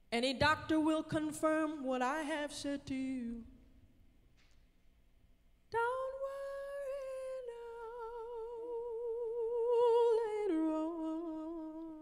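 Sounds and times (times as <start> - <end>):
woman singing unaccompanied: 0.1 - 3.7, 5.7 - 12.0.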